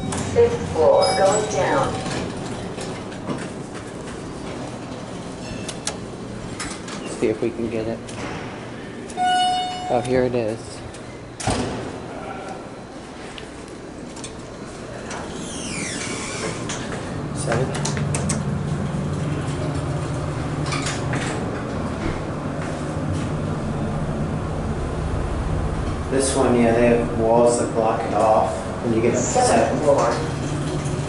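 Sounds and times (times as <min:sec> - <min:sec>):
elevator car low hum: 0:00.0 - 0:31.0
sliding elevator doors running: 0:00.0 - 0:31.0.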